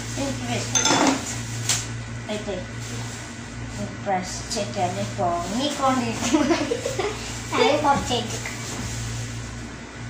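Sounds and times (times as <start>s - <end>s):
dishes clinking: 0.7s - 1.3s.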